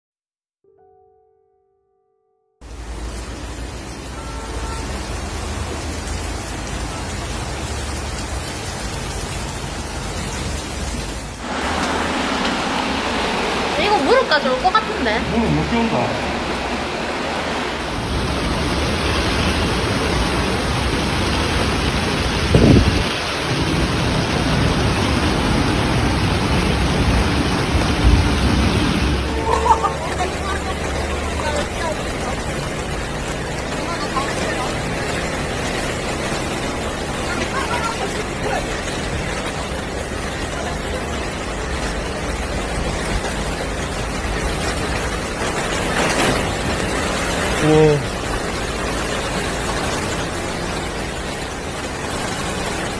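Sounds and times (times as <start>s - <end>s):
heavy rain and floodwater rushing: 2.6s - 52.9s.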